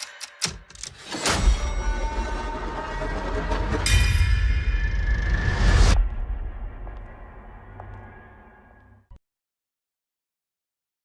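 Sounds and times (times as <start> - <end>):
deep rumble: 2.1 - 9.0.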